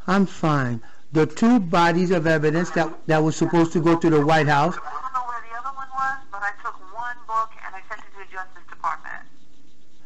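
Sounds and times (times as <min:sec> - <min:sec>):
voices on speakerphone: 0:00.0 - 0:09.4.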